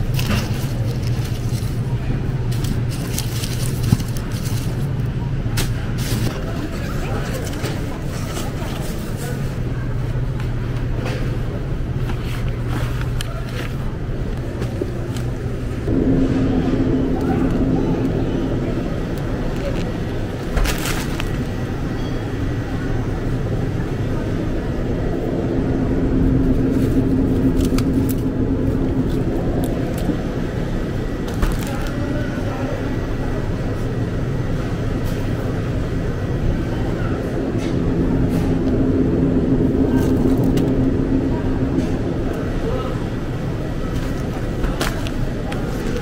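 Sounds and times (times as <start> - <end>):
low rumble and hum: 0.0 - 46.0
indistinct voices: 13.3 - 46.0.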